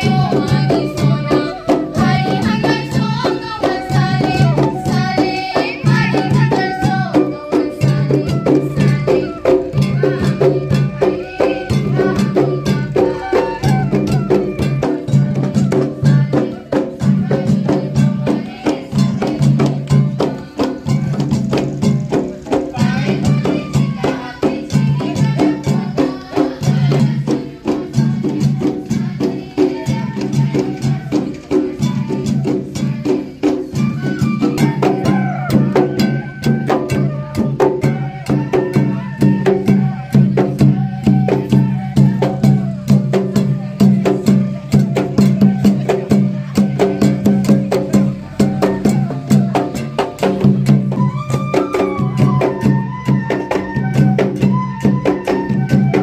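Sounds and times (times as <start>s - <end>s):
bamboo flute melody: 0.0s - 56.0s
drums beating: 0.0s - 56.0s
rattling bamboo percussion: 0.0s - 56.0s
women singing into a microphone: 0.0s - 56.0s.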